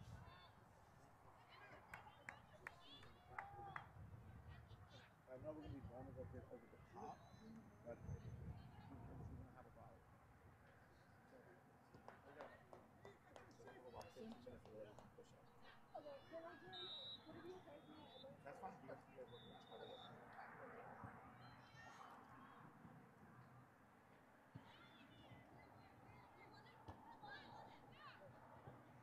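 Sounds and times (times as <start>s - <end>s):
distant shouting and voices: 0.0s - 29.0s.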